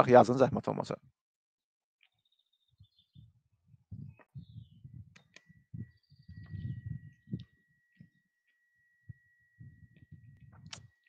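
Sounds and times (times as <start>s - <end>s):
muffled thumps and rustles: 3.2s - 7.4s
high-pitched whine: 4.6s - 11.0s.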